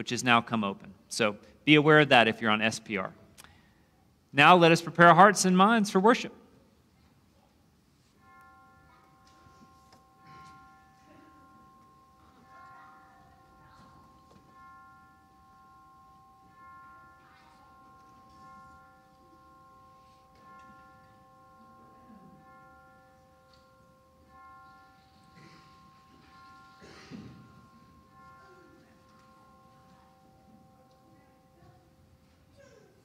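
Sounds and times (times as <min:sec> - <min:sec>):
slow keyboard chords: 0:08.2 - 0:32.5
people moving knocks and rustles: 0:24.5 - 0:33.0.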